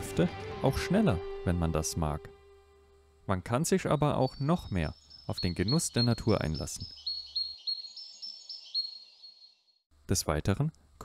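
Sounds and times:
small songbird singing: 3.8s - 9.8s.

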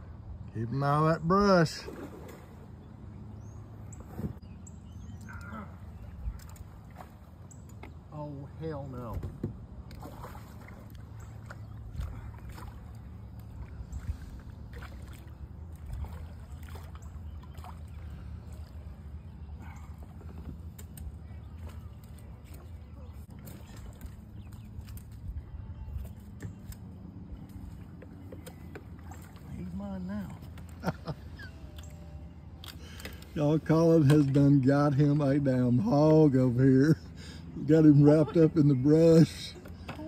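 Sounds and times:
water sloshing around kayaks: 0.0s - 40.0s.

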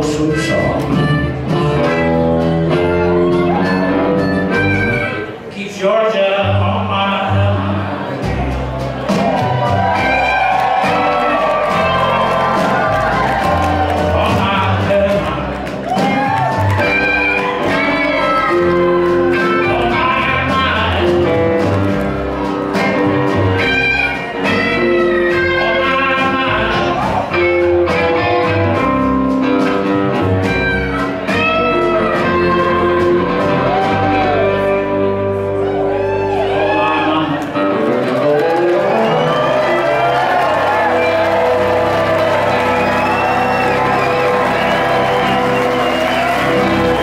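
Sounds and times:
plucked guitar: 0.0s - 5.4s, 6.4s - 47.0s
steady bass: 0.0s - 5.6s, 6.4s - 47.0s
band playing slow ballad: 0.0s - 47.0s
audience cheering and whooping: 2.7s - 4.2s, 9.0s - 27.9s, 31.3s - 47.0s
harmonica: 2.9s - 5.4s.

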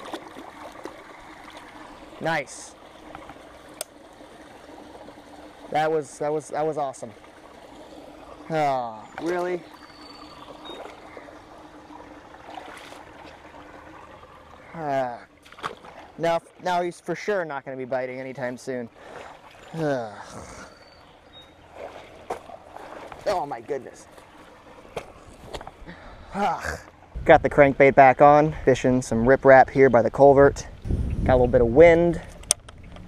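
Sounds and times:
water trickling into a pool: 0.0s - 27.2s.

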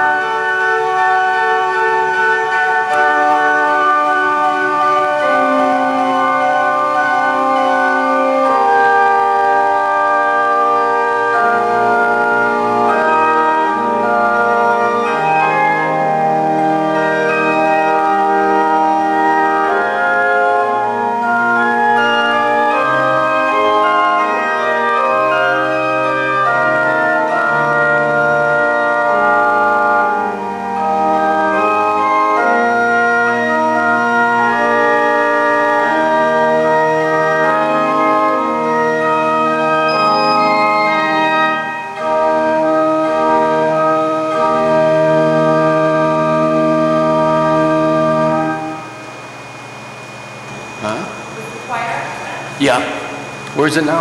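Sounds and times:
pipe organ chords: 0.0s - 54.0s.

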